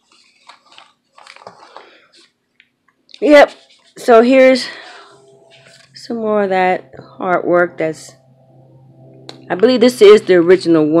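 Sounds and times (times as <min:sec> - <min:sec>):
paper pages rustling: 0:00.0 - 0:02.4, 0:03.2 - 0:04.9.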